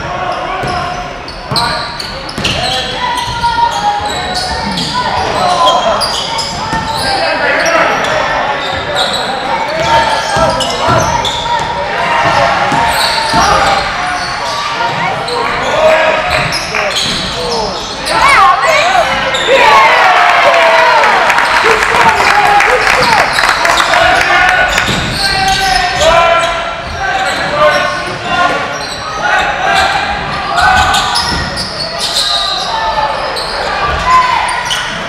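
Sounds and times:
sneakers squeaking: 0.2 - 19.8, 22.9 - 35.0
people calling out: 2.6 - 34.8
basketball bouncing: 24.8 - 25.2.

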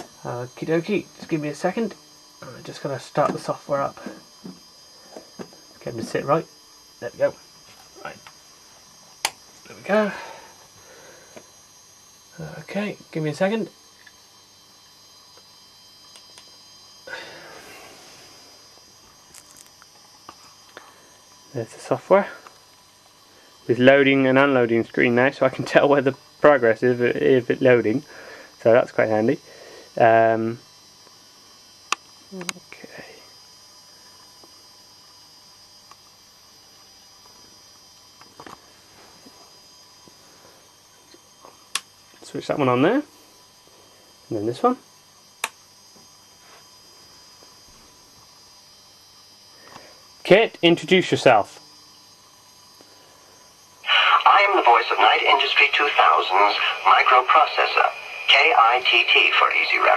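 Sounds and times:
electronic hiss and whine: 0.0 - 59.9.

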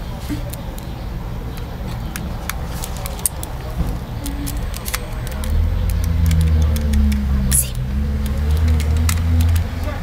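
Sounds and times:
sharp irregular key clicks: 4.2 - 9.7.

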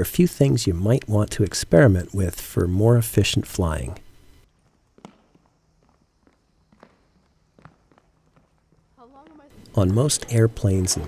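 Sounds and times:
low steady hum: 0.0 - 11.0
footsteps on wooden floor: 4.6 - 9.6.

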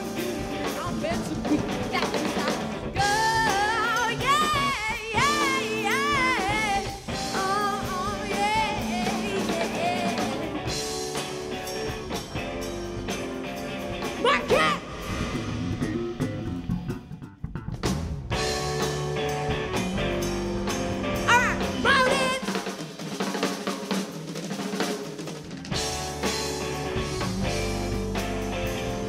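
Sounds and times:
keyboard: 0.0 - 22.9, 25.7 - 29.0
drum kit: 0.0 - 29.0
guitar: 0.0 - 29.0.

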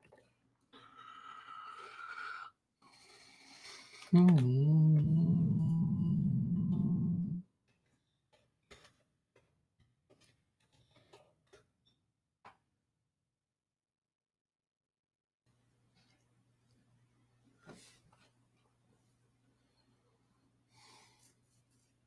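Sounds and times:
soft breathy sounds: 0.7 - 7.4
man groaning: 4.2 - 7.4.

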